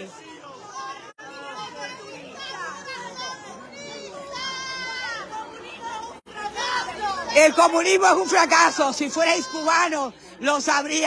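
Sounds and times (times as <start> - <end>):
people arguing: 0.0 - 11.0.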